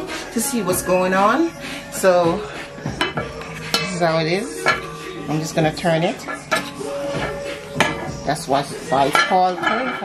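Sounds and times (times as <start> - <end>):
metal spoon scraping pot: 3.0 - 8.1, 8.9 - 10.0.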